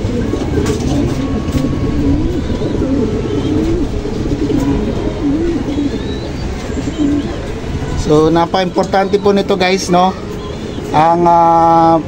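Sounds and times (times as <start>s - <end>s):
pigeons cooing: 0.0s - 11.2s.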